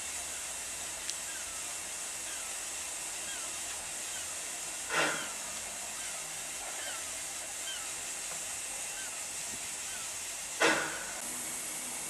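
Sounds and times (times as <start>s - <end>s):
steam hissing: 0.0s - 12.0s.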